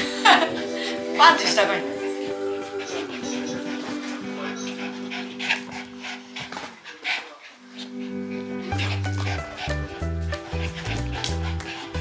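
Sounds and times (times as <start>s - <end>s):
background music: 0.0s - 6.6s, 7.6s - 12.0s.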